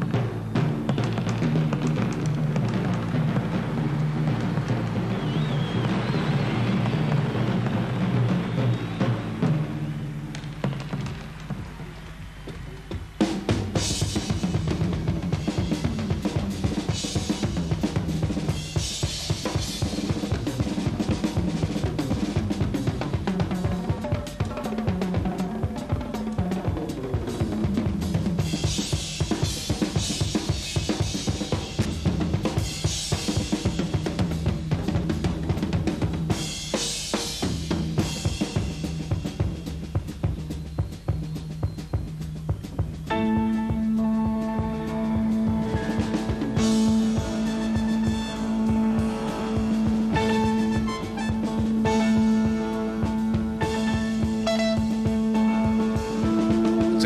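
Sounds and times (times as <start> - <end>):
drum kit solo: 0.0 - 57.0.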